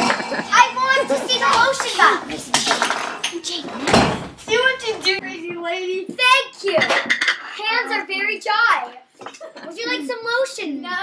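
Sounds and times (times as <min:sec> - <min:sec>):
children laughing: 0:00.0 - 0:02.5
children chattering: 0:00.0 - 0:06.7.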